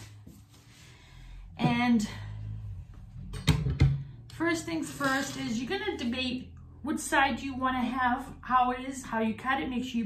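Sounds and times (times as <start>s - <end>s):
low hum: 0.9s - 8.8s.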